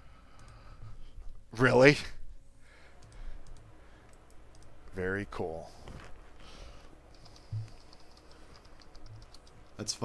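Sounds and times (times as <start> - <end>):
computer keyboard typing: 7.1 - 9.9.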